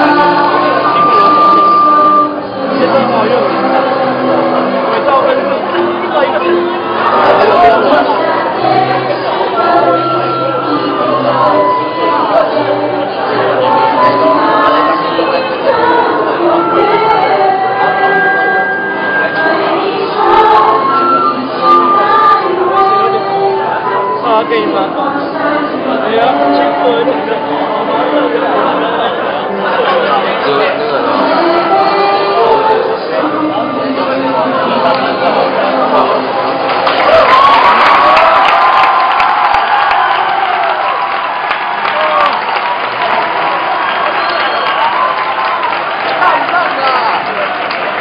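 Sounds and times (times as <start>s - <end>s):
choir singing: 0.0s - 38.2s
crowd of young voices chattering: 0.0s - 48.0s.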